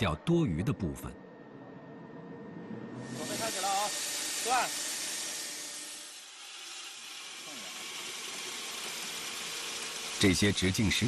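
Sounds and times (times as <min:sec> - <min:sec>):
machinery hissing: 0:03.0 - 0:11.0.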